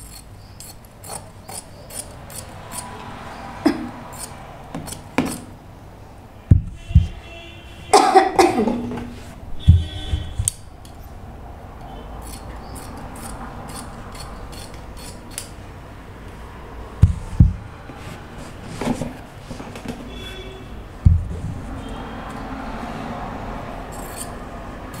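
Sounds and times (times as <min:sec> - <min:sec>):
dull knocks: 0:06.5 - 0:07.2, 0:21.0 - 0:21.6.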